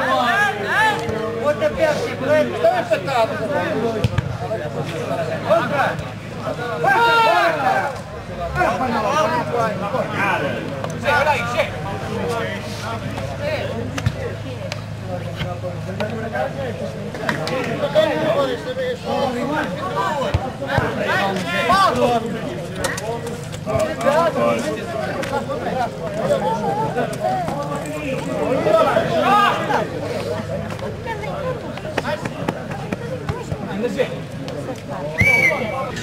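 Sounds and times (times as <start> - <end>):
excited voices calling and chatting: 4.6 - 36.0
loud drawn-out shout: 6.7 - 7.8.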